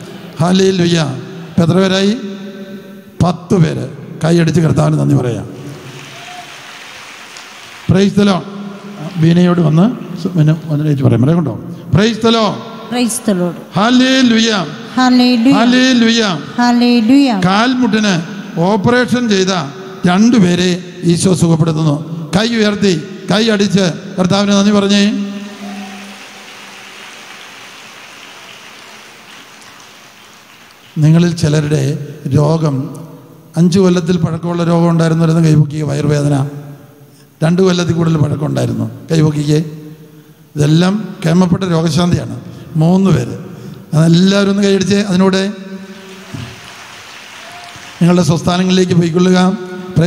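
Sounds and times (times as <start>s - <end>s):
crowd background hiss: 0.0s - 50.0s
crowd clapping: 5.6s - 9.8s, 25.4s - 31.6s, 45.8s - 48.7s
faint short tone: 25.4s - 26.6s.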